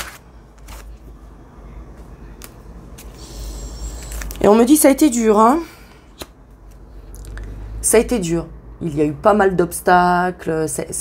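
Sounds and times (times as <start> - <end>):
cards shuffled by hand: 0.0 - 1.0, 2.4 - 4.5.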